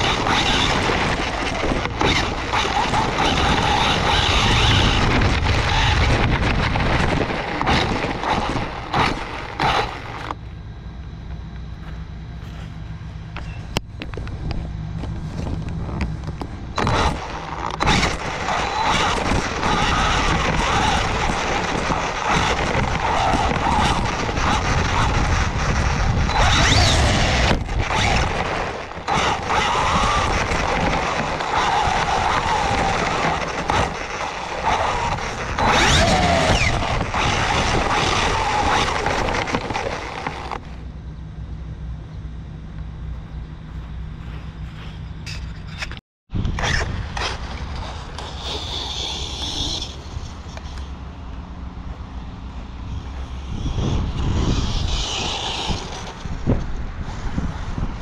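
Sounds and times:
rattle: 0.0s - 10.4s, 15.2s - 40.8s, 45.2s - 51.0s, 52.9s - 56.7s
wind noise: 0.0s - 10.7s, 13.4s - 40.7s, 43.2s - 58.0s
electric motor whine: 0.0s - 58.0s
low steady hum: 0.0s - 58.0s.

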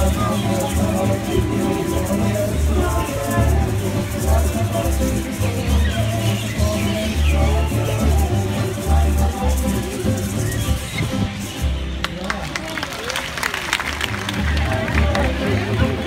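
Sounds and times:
person singing: 0.0s - 10.8s, 14.4s - 16.0s
gourd rattles shaking: 0.0s - 10.9s
plucked guitar: 0.0s - 12.5s, 14.1s - 16.0s
upright bass: 0.0s - 16.0s.

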